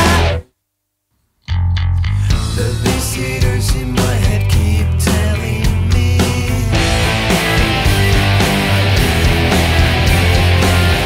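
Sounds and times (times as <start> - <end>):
rock band with distorted guitar: 0.0 - 0.4, 1.8 - 11.0.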